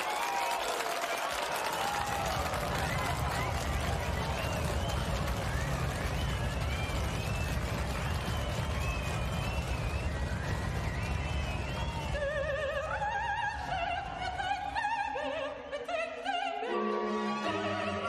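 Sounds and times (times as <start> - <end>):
audience applause and whooping: 0.0 - 15.3.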